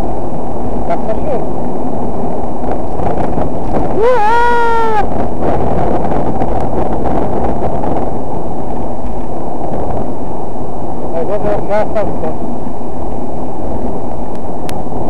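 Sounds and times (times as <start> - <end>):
car road and engine noise: 0.0 - 15.0.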